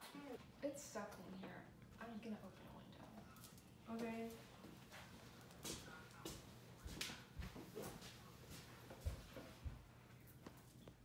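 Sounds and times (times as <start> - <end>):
footsteps on tile floor: 3.9 - 11.0.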